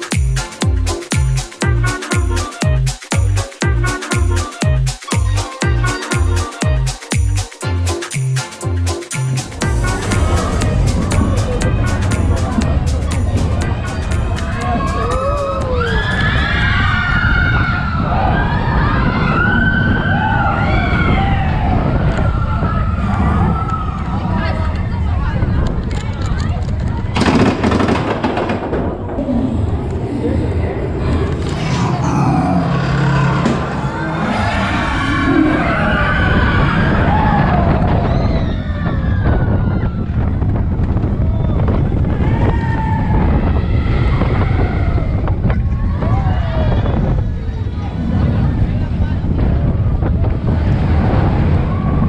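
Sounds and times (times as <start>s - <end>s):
roller coaster track clatter: 9.5s - 32.0s, 32.6s - 52.0s
low rumble: 9.5s - 52.0s
wind buffeting microphone: 9.6s - 31.6s, 33.8s - 52.0s.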